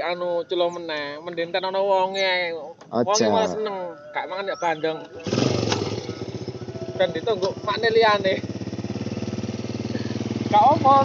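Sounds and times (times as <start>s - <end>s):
small motorcycle engine idling: 5.2s - 11.0s.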